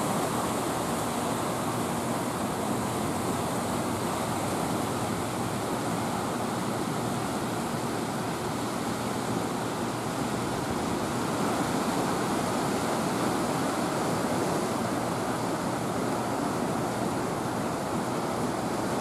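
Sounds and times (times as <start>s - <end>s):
water rushing from floodgates: 0.0s - 19.0s.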